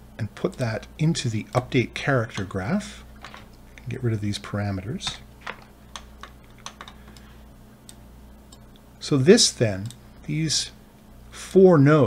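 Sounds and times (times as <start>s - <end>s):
keyboard and mouse clicks: 5.1s - 7.3s.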